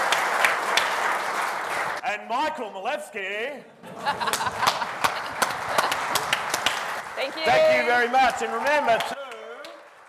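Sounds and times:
audience applauding: 0.0s - 2.0s, 4.2s - 10.0s.

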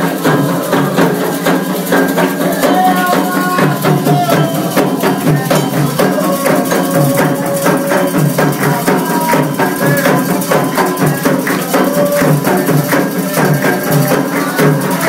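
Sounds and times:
hand drums playing fast rhythm: 0.0s - 15.0s
voices singing: 0.0s - 15.0s
metal bell ringing: 0.1s - 15.0s.

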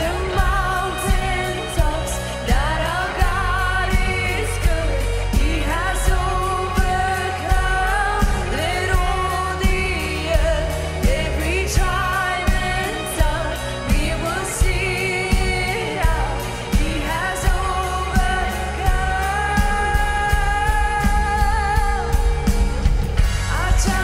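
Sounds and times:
bass guitar: 0.0s - 24.0s
electric guitar: 0.0s - 24.0s
women singing: 0.0s - 24.0s.

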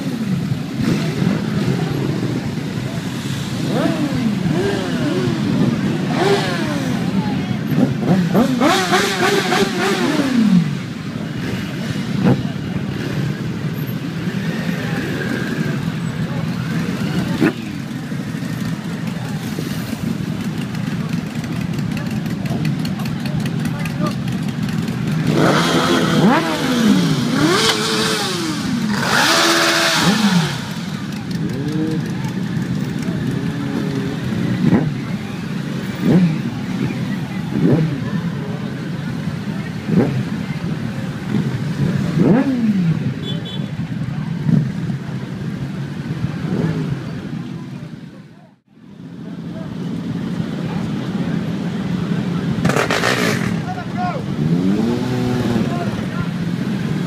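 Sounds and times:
motorcycle engines idling: 0.0s - 57.0s
motorcycle engines revving: 0.0s - 57.0s
people talking: 0.0s - 57.0s.

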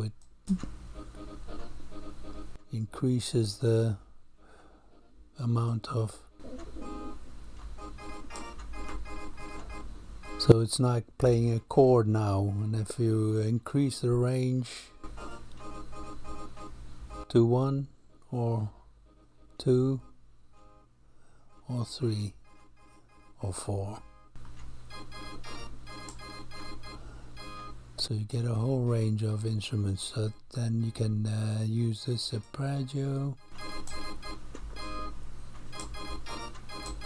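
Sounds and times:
organ-like synth chords: 18.2s - 27.9s, 30.2s - 37.0s.

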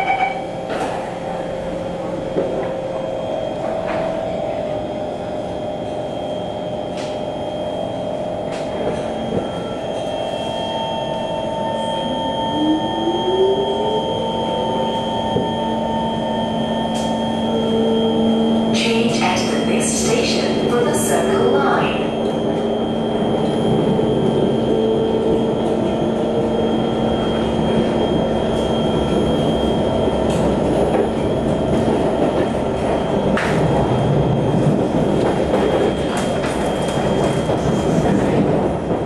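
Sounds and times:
train doors shutting: 3.6s - 6.1s, 8.4s - 10.2s, 16.8s - 39.0s.

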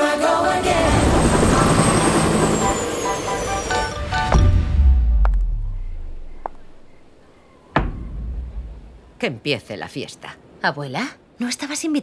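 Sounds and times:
helicopter rotor chop: 0.6s - 4.0s.

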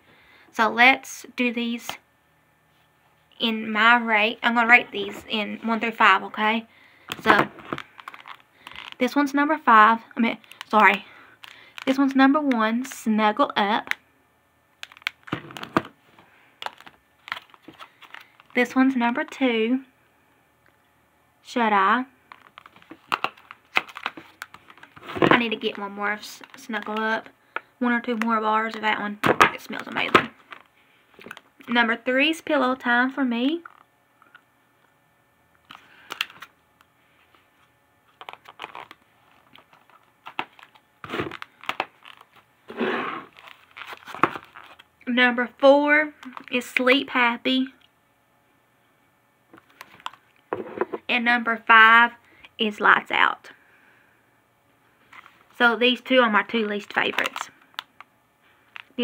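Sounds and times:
plastic packaging clicks and crinkles: 7.1s - 9.0s, 10.4s - 12.0s, 14.8s - 15.9s, 16.6s - 18.6s, 22.3s - 25.8s, 35.6s - 36.5s, 38.1s - 42.4s, 43.3s - 44.9s, 49.6s - 50.4s, 57.0s - 58.1s, 58.7s - 59.0s
plastic packaging rustle: 7.6s - 9.0s, 16.6s - 18.6s, 22.3s - 25.8s, 38.1s - 42.5s, 43.2s - 44.9s.

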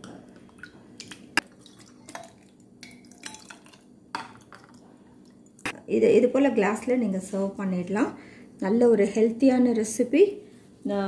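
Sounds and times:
liquid sloshing: 0.6s - 5.6s.

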